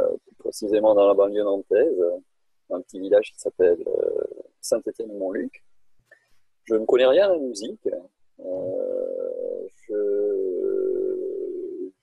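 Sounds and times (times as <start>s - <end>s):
man making hesitation sounds: 0.0s - 5.5s, 6.7s - 12.0s.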